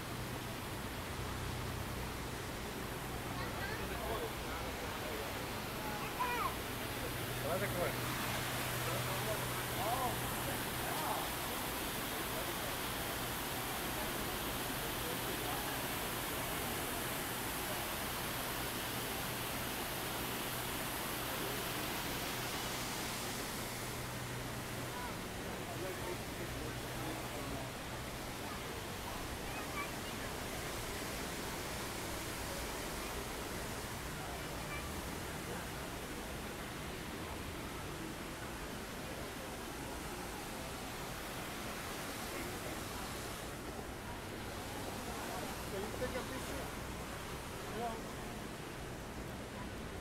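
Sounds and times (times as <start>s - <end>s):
fountain water splashing: 0.0s - 50.0s
murmur of voices: 1.2s - 18.2s, 20.2s - 50.0s.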